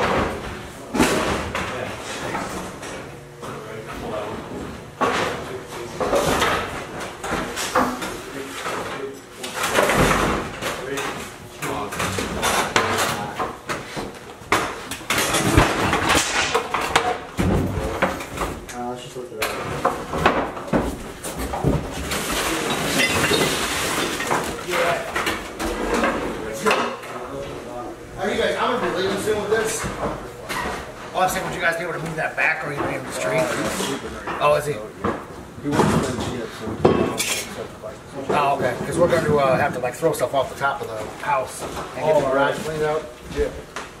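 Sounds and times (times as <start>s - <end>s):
knocks bangs and clatter: 14.5s - 18.6s.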